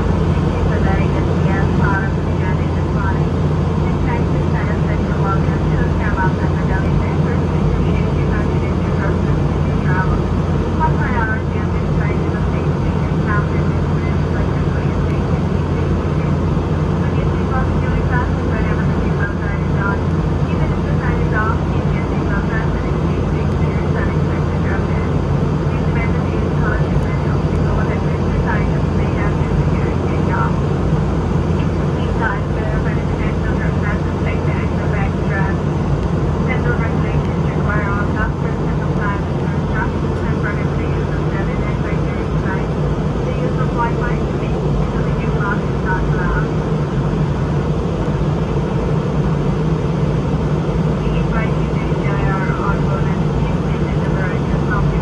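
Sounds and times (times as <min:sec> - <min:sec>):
airplane cabin engine drone: 0:00.0 - 0:55.0
indistinct passenger chatter: 0:00.0 - 0:55.0.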